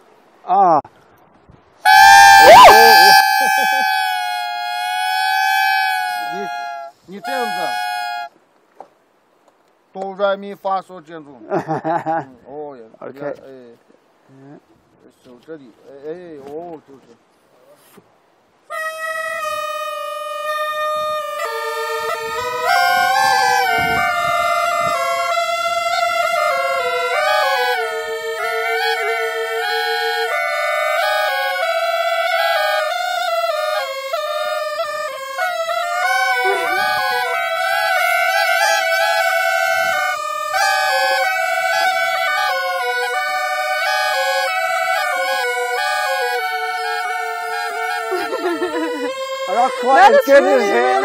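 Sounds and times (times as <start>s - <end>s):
reed pipes playing long notes: 1.8s - 8.4s, 18.7s - 51.0s.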